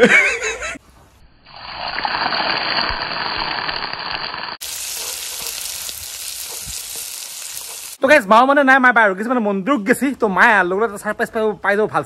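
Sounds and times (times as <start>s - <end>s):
onions sizzling in hot oil: 1.6s - 8.0s.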